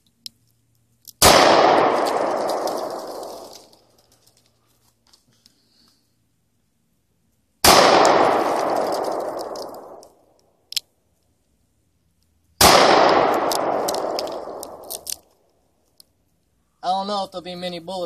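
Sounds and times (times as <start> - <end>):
gunshots with long echo: 1.2 - 3.6, 7.6 - 10.2, 12.6 - 15.0.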